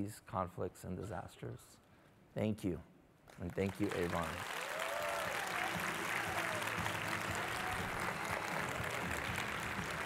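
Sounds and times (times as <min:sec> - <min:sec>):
audience applauding: 0:03.4 - 0:10.0.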